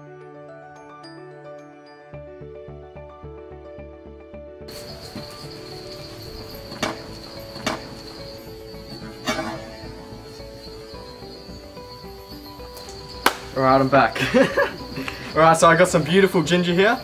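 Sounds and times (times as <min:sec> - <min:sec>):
background music: 0:00.0 - 0:17.0
high insect chirr: 0:04.7 - 0:17.0.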